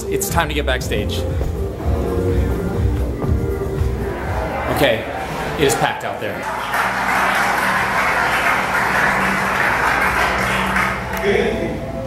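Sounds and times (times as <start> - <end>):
audience murmuring: 1.2 - 12.0.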